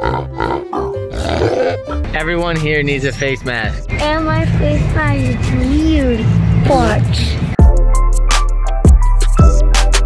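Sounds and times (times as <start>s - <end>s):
cartoon pig grunting: 0.0s - 1.9s
music with pulsing bass beat: 7.6s - 10.0s.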